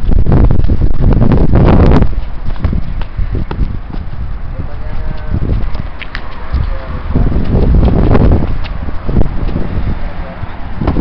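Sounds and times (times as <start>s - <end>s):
sneaker footwork on concrete: 0.3s - 11.0s.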